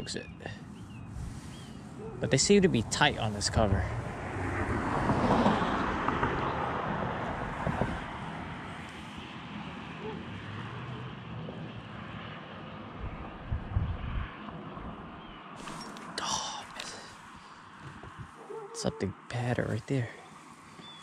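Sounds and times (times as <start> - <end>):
low traffic rumble: 0.0 - 21.0
vehicle passing: 0.4 - 21.0.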